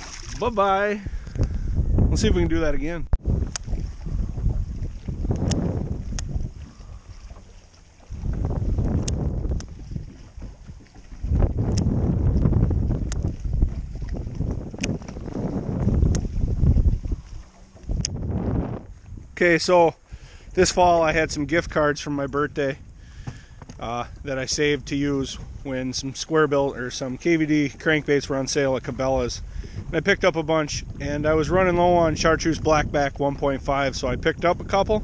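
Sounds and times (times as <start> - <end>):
wind buffeting microphone: 0.0 - 35.0
faint ticks: 5.3 - 6.8.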